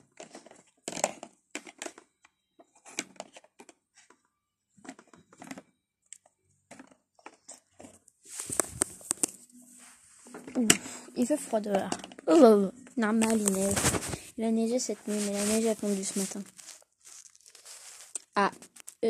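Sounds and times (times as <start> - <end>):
rustling: 6.7 - 12.2, 13.0 - 19.0.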